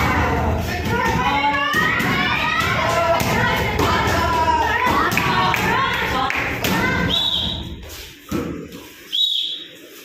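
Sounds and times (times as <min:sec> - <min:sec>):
voices: 0:00.0 - 0:08.0.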